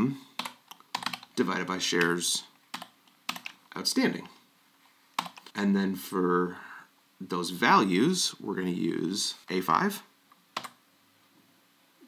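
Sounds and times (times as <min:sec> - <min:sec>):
computer keyboard keystroke: 0:00.4 - 0:01.3, 0:02.7 - 0:03.6, 0:05.2 - 0:05.5, 0:10.6 - 0:10.8.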